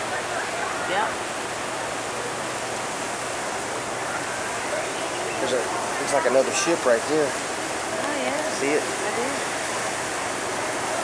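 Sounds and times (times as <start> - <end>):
churning sea water: 0.0 - 11.0.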